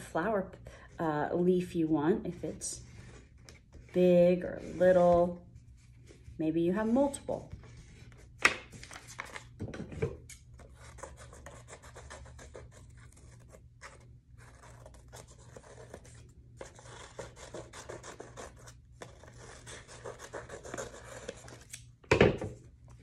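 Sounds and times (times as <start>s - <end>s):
paper rustling: 7.6s - 9.5s.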